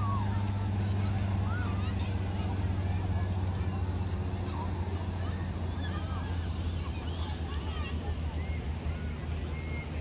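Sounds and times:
faint voices: 0.0s - 10.0s
low engine hum: 0.0s - 10.0s.

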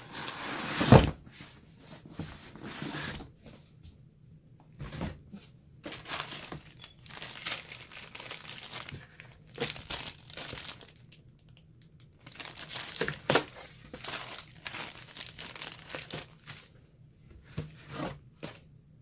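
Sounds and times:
plastic bag crinkling: 5.8s - 11.6s, 12.2s - 16.7s.

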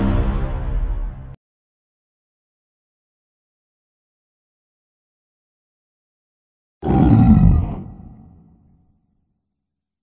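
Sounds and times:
loud deep monster roar: 6.8s - 8.8s.

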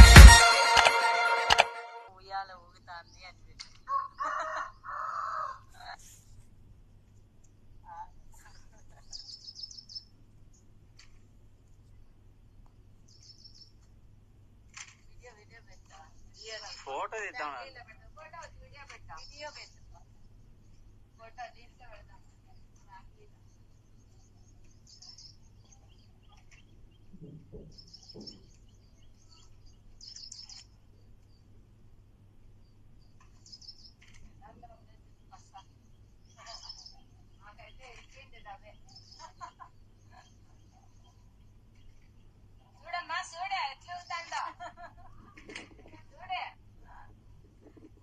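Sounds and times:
small bird chirping: 7.8s - 10.7s, 13.0s - 13.9s, 21.9s - 31.6s, 32.5s - 43.0s.

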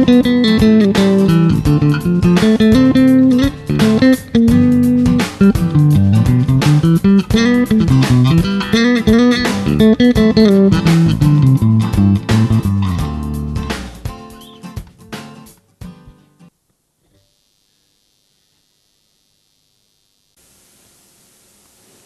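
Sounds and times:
electric bass played fingerstyle: 0.0s - 16.4s.

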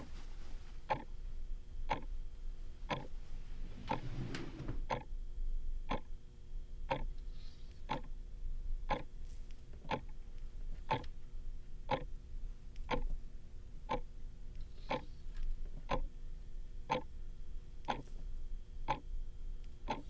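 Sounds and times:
soft rustle: 0.0s - 0.9s
clock ticking: 0.9s - 1.1s, 1.9s - 2.1s, 2.9s - 3.1s, 4.9s - 5.1s, 5.9s - 6.1s, 6.9s - 7.1s, 7.9s - 8.1s, 8.9s - 9.1s, 9.8s - 10.2s, 10.9s - 11.1s, 11.9s - 12.1s, 12.8s - 13.1s, 15.8s - 16.1s, 16.9s - 17.1s, 17.8s - 18.1s, 18.9s - 19.1s, 19.8s - 20.0s.

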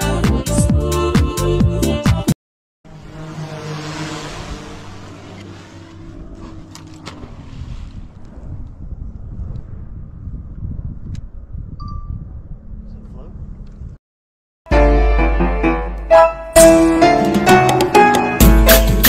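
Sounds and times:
boat motor hum: 2.9s - 9.9s
wind buffeting microphone: 4.4s - 14.0s.

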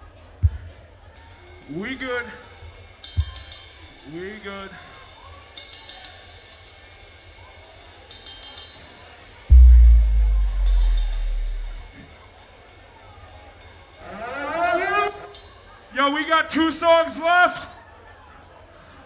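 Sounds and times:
hi-hat ticks: 9.5s - 11.9s
low electric bass note: 9.5s - 11.9s.

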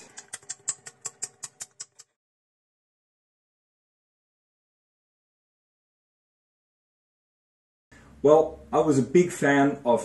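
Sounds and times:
rapid small clicks and taps: 0.0s - 2.2s.

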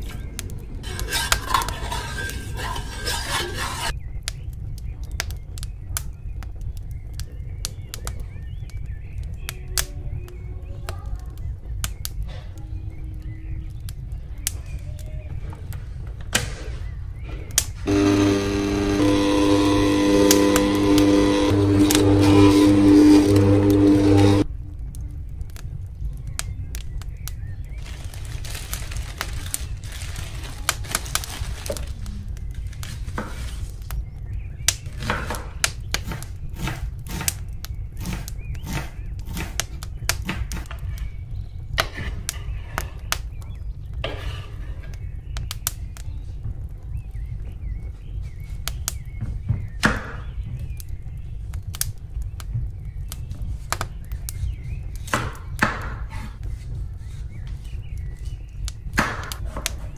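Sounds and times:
stand mixer motor running: 17.9s - 24.4s.

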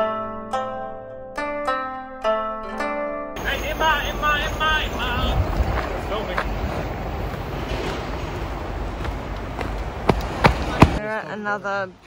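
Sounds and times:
wind rumble on microphone: 4.2s - 11.0s.

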